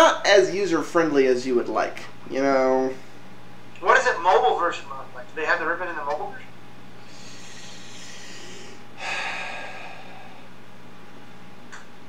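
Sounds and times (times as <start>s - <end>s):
man breathing: 7.0s - 10.6s.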